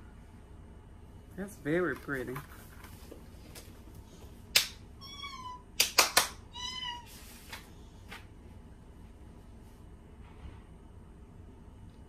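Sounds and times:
high-pitched animal calls: 0:05.0 - 0:05.7, 0:06.5 - 0:07.1.

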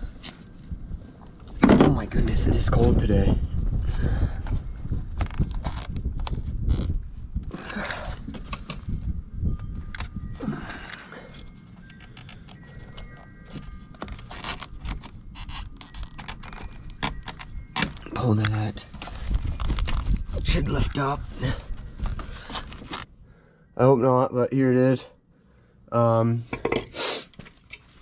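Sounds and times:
hand tools clinking and scraping metal: 0:09.9 - 0:23.1.

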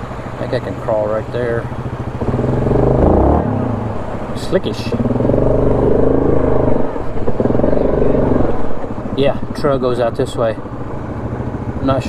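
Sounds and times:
quad engine running at low revs: 0:00.0 - 0:12.0.

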